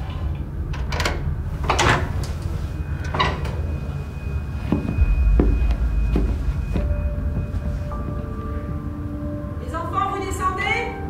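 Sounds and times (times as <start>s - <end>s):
suspense film score: 2.2s - 11.0s
deep rumble: 3.7s - 9.6s.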